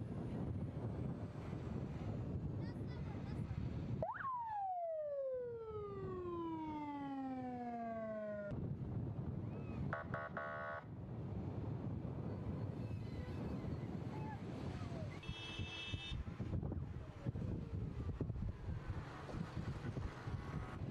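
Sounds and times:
rumble of moving vehicle: 0.0s - 20.9s
vehicle siren whoop: 4.0s - 8.5s
buzzing horn blast: 9.9s - 10.8s.

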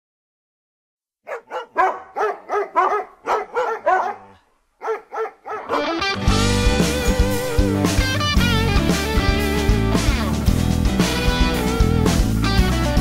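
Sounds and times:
dog barking: 1.3s - 6.0s
music: 5.7s - 13.0s.

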